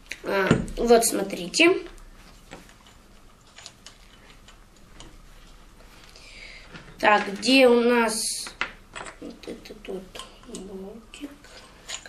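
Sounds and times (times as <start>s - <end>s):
metal parts clicking and tapping: 2.5s - 5.2s, 8.4s - 9.3s, 10.1s - 12.0s.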